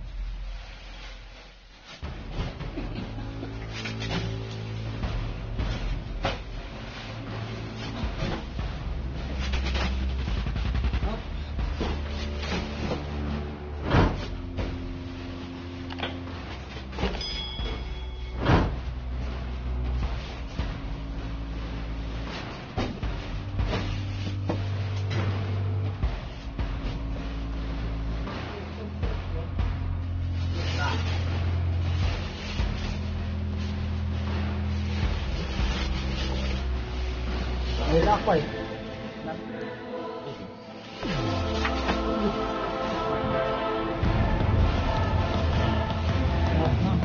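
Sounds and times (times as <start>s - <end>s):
background music: 0.0s - 47.0s.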